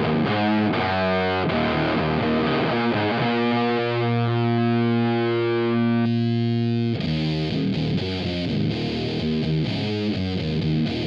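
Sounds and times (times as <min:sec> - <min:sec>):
fuzzed electric guitar chords: 0:00.0 - 0:11.0.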